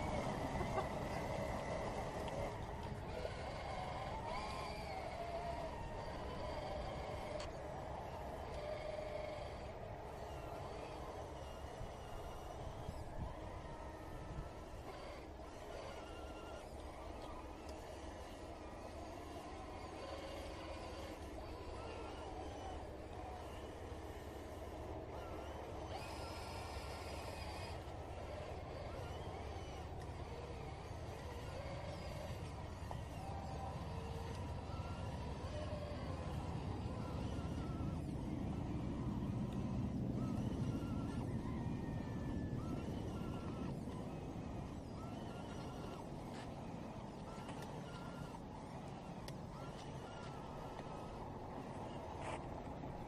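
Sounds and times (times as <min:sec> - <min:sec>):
electric motor and gear whine: 0:00.0 - 0:53.0.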